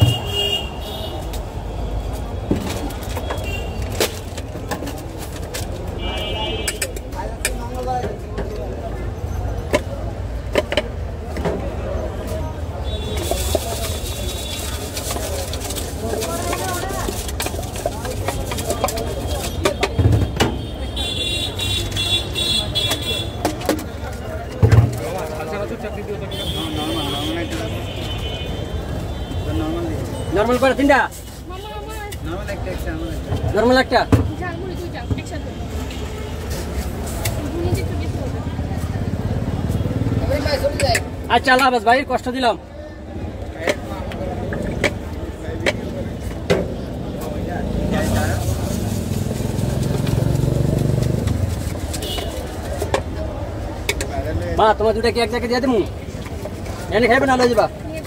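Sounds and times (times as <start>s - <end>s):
street traffic rumble: 0.0s - 58.0s
motor vehicle passing: 47.2s - 51.7s.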